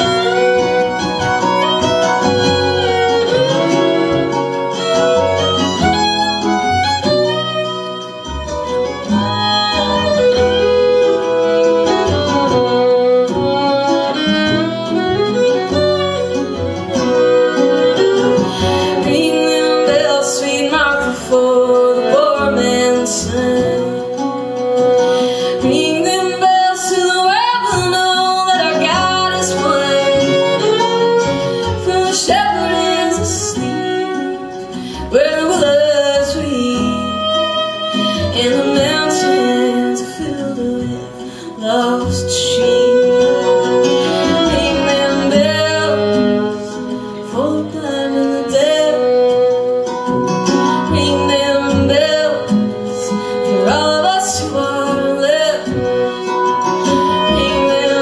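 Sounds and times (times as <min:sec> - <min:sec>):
bowed cello: 0:00.0 - 0:58.0
fiddle melody: 0:00.0 - 0:58.0
strummed acoustic guitar: 0:00.0 - 0:58.0.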